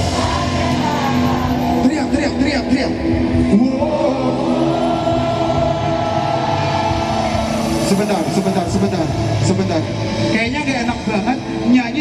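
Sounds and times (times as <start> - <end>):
live pop-rock band: 0.0 - 12.0.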